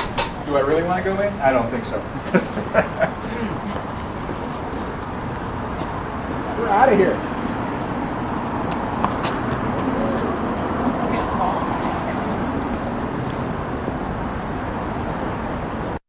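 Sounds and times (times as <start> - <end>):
road traffic: 0.0 - 16.0
voices murmuring: 9.4 - 15.5.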